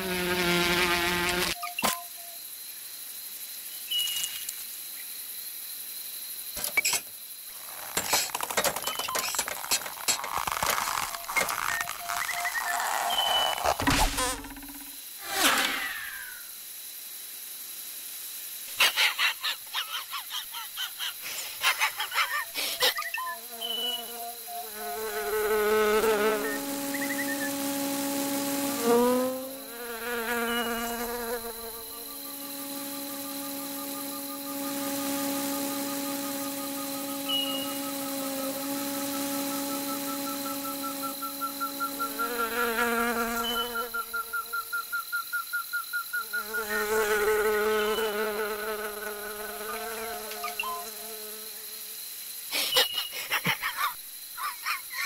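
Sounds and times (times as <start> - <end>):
insect wings buzzing: 0.0 - 5.1, 5.9 - 16.9, 20.8 - 45.2, 46.0 - 52.6
thin rising whine: 31.9 - 42.6.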